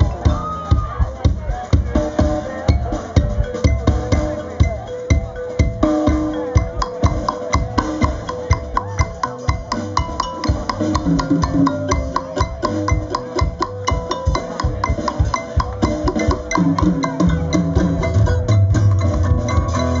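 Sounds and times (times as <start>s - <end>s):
bass: 0.0s - 20.0s
drums: 0.0s - 20.0s
mallet keyboard struck rapidly: 0.0s - 20.0s.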